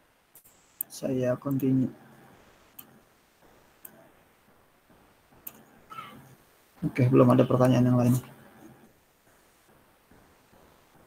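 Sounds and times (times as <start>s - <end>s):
low background hiss: 0.0s - 11.0s.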